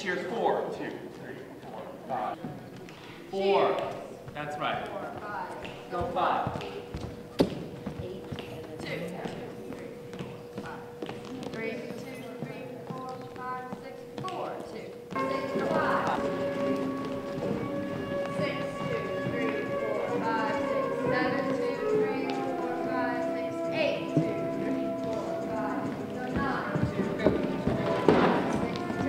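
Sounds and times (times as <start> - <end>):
scattered voices: 0.0 - 29.0
dancers' footfalls on stage floor: 5.1 - 22.7, 24.1 - 29.0
recorded instrumental music: 15.2 - 29.0.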